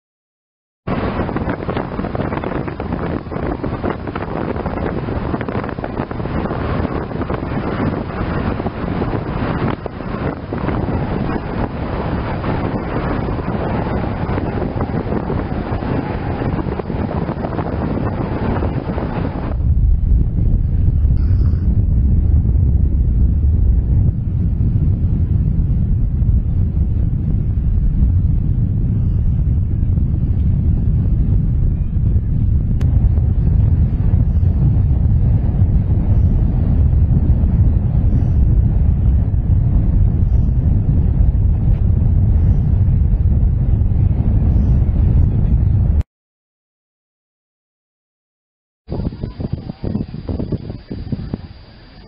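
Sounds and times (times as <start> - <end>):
wind buffeting microphone: 0.9 - 46.0, 48.9 - 52.0.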